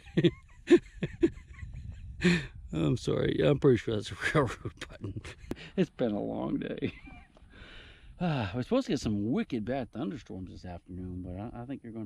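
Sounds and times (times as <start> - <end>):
man chuckling: 0.0 - 2.6, 4.5 - 5.8, 6.8 - 7.3.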